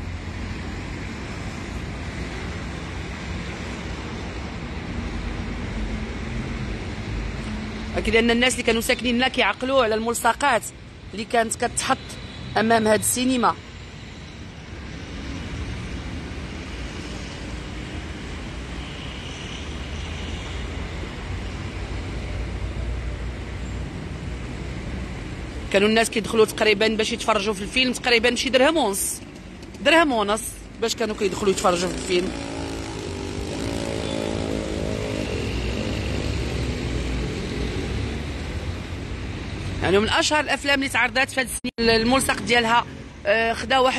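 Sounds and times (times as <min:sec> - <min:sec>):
road traffic noise: 0:00.0 - 0:43.9.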